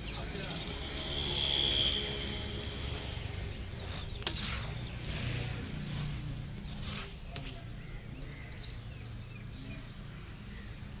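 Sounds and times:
birds chirping: 0:00.0 - 0:11.0.

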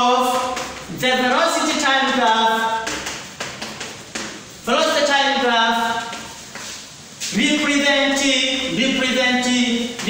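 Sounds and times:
chalk writing on a blackboard: 0:05.7 - 0:07.6.

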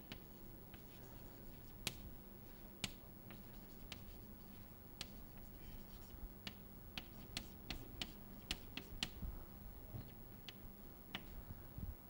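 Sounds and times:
chalk tapping on blackboard: 0:02.8 - 0:04.3, 0:05.0 - 0:09.2.

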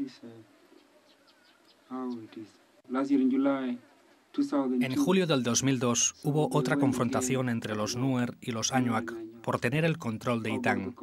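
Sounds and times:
man talking: 0:04.4 - 0:11.0.

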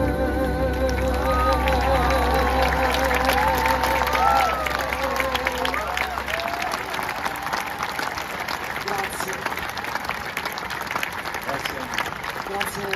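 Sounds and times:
orchestra: 0:00.0 - 0:07.3
audience applauding: 0:00.5 - 0:12.9.

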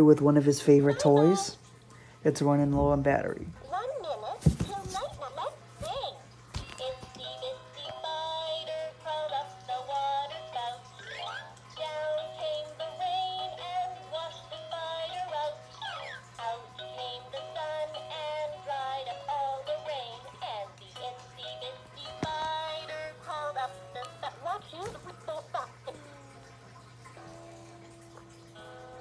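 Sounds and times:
toy playing children's song: 0:00.6 - 0:01.6, 0:03.6 - 0:29.0.

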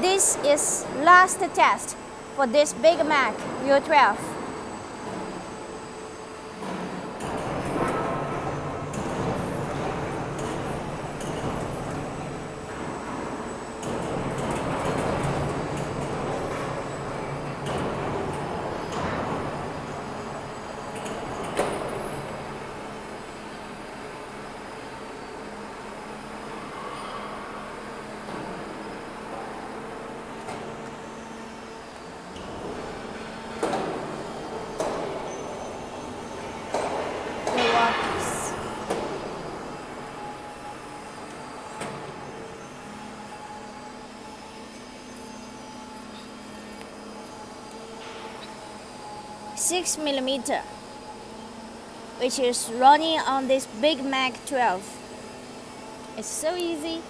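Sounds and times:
roll forming machine rumbling: 0:04.3 - 0:26.8.

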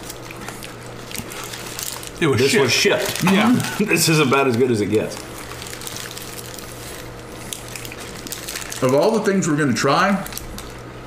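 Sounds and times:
wet chewing: 0:00.0 - 0:02.2, 0:04.4 - 0:08.9
steady low hum: 0:00.0 - 0:11.0.

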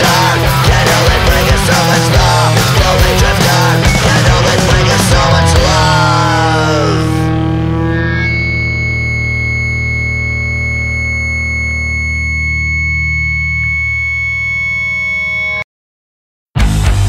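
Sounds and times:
distorted electric guitar chord ringing: 0:00.0 - 0:15.6
steady high tone: 0:00.0 - 0:15.7.

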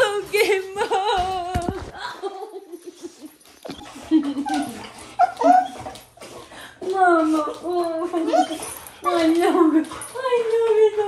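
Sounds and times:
dog whining and yipping: 0:03.6 - 0:05.9, 0:08.2 - 0:09.4.

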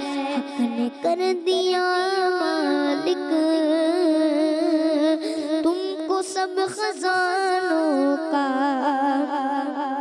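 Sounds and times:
boy singing into microphone: 0:00.0 - 0:10.0.

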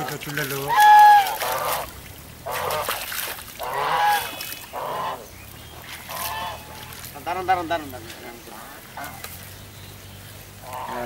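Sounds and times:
geese honking: 0:00.7 - 0:09.2, 0:10.6 - 0:11.0.

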